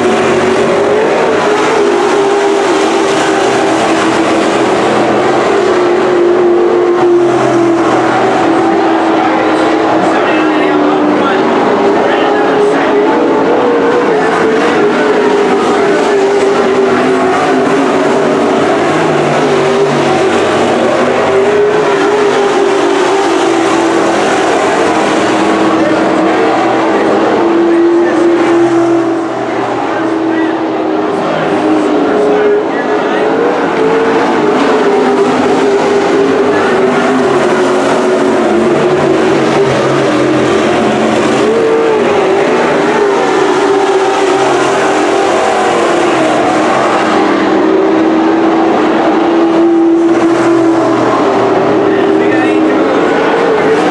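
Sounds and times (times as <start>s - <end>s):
race car engines droning: 0.0s - 53.9s.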